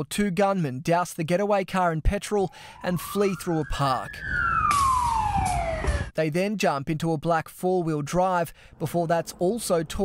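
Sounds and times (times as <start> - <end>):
siren wailing: 2.3 - 6.1.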